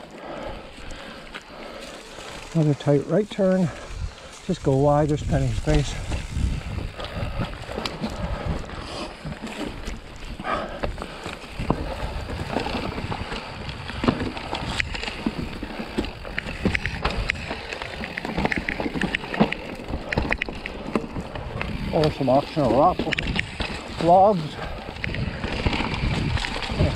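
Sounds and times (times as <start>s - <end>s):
bike tyres rolling over dirt: 0.0s - 26.9s
bike rattling and knocking: 0.2s - 26.9s
wind rumble on microphone: 3.5s - 26.9s.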